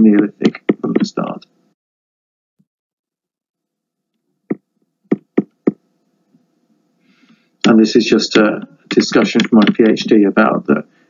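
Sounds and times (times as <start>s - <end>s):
faint steady hum: 0.0s - 1.8s, 3.7s - 11.0s
sharp taps near microphone: 0.2s - 1.2s, 4.5s - 5.8s.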